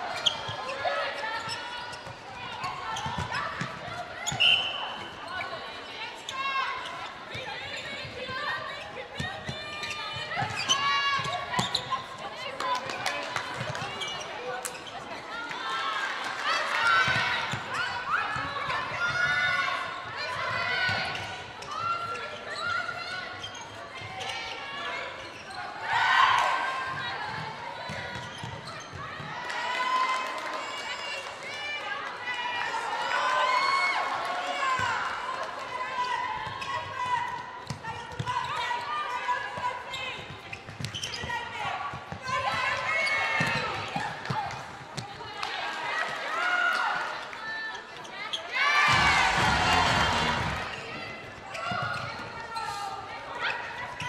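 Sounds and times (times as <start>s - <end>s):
shoes squeaking on court floor: 0.1s - 12.2s, 12.9s - 15.3s, 20.4s - 25.8s, 27.3s - 29.2s, 36.4s - 44.4s, 47.8s - 54.0s
players calling to each other: 0.2s - 12.2s, 48.3s - 54.0s
murmuring crowd: 48.9s - 51.5s.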